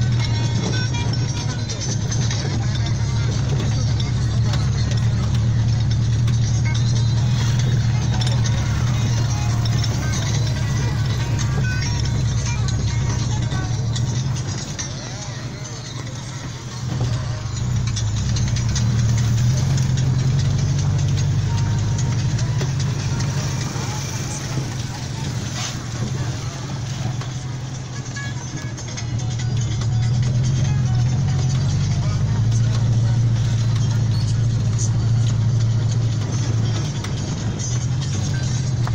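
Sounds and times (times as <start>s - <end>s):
car engine and road noise: 0.0s - 38.9s
music playing: 0.0s - 38.9s.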